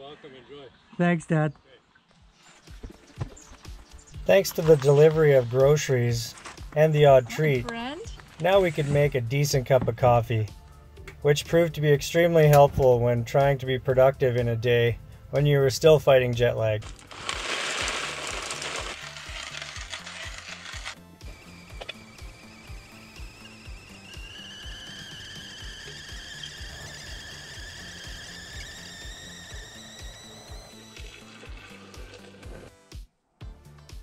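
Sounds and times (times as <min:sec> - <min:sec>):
kettle whistling: 0:04.1 - 0:07.5, 0:16.8 - 0:32.6
coffee grinder crunching beans: 0:04.3 - 0:07.5, 0:08.1 - 0:09.2, 0:16.8 - 0:32.7.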